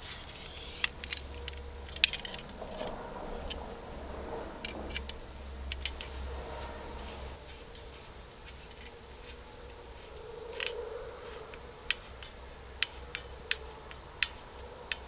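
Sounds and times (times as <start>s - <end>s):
high-pitched insect trill: 0.0s - 15.0s.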